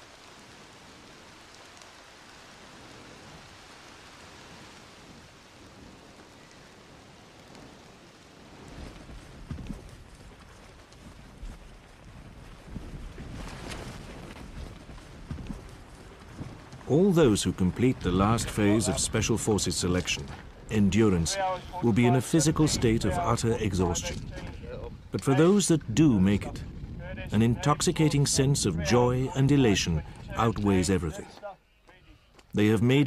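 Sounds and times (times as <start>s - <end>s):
wind hiss on microphone: 0.0s - 31.2s
low rumbling gusts: 0.0s - 31.4s
irregular thuds: 13.1s - 16.9s.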